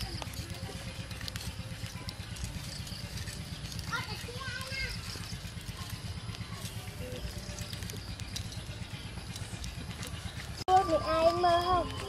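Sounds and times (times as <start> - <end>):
charcoal fire crackling: 0.0 - 12.0.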